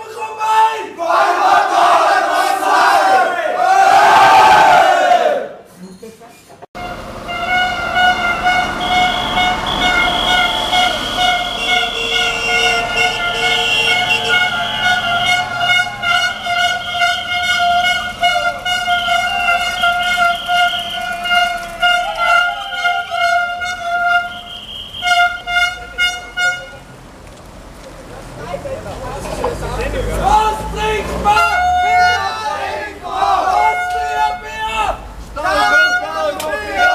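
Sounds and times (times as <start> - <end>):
vehicle horn blasts: 6.8 - 27.0, 29.9 - 36.9.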